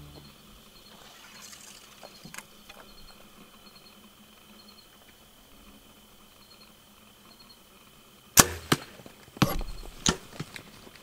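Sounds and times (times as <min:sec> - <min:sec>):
faint insect-like chirping: 0:00.0 - 0:08.4, 0:09.0 - 0:11.0.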